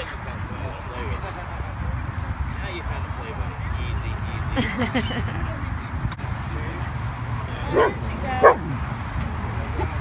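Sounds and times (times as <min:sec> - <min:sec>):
dog barking: 0:07.7 - 0:08.7.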